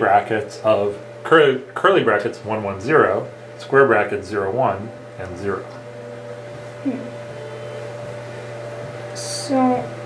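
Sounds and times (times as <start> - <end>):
low hum: 2.7 - 10.0
faint higher tone: 5.8 - 9.5.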